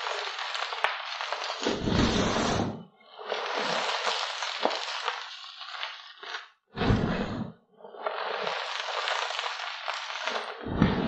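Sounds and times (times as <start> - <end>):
chalk crumbling and crunching: 0.0 - 2.4, 3.2 - 6.6, 7.9 - 10.7.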